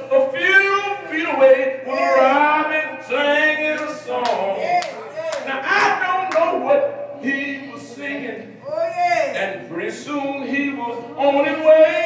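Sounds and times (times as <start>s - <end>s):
man chanting preaching: 0.0s - 12.0s
sharp hand claps: 3.8s - 6.5s.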